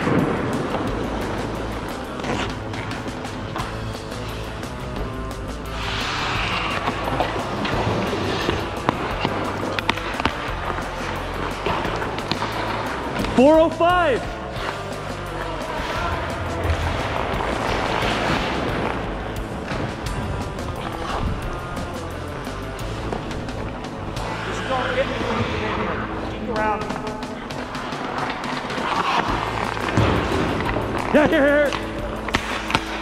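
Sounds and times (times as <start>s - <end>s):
background music: 0.0s - 33.0s
person speaking: 24.3s - 27.4s.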